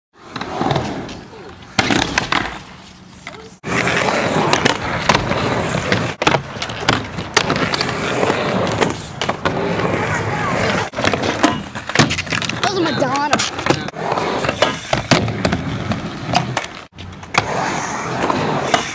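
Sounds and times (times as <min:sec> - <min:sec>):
skateboard wheels rolling: 0:00.2 - 0:18.9.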